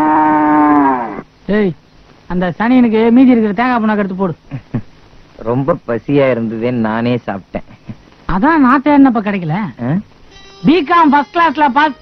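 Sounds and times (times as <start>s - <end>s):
cow mooing: 0.0s - 1.2s.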